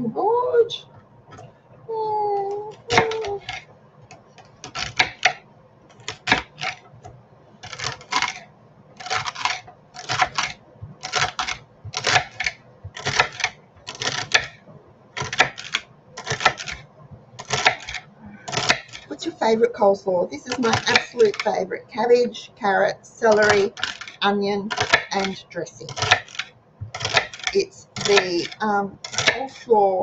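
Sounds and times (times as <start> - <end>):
knife slicing celery on board: 2.8 - 3.6, 4.6 - 5.4, 6.0 - 6.8, 7.6 - 8.4, 9.0 - 14.6, 15.2 - 16.8, 17.4 - 19.2, 20.4 - 21.6, 23.2 - 29.6.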